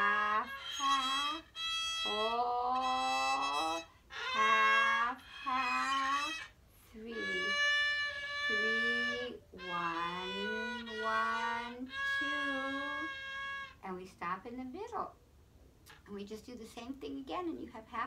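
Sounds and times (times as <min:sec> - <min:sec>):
woman singing note names: 0:00.0 - 0:01.4, 0:02.0 - 0:07.7, 0:08.5 - 0:13.2
violin playing long notes: 0:00.0 - 0:13.8.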